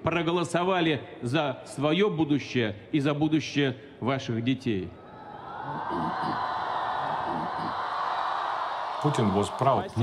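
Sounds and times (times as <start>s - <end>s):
crowd cheering and whooping: 5.0s - 10.0s.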